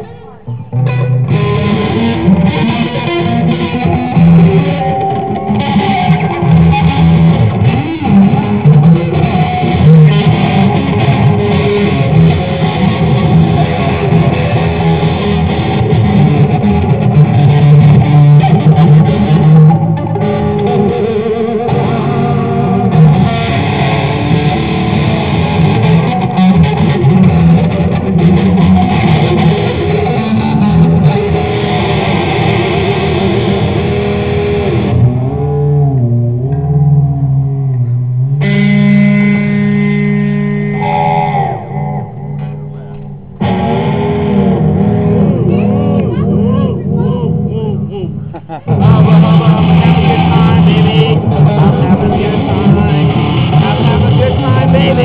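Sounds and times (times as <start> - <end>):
electric guitar with bent notes: 0.0 - 55.0.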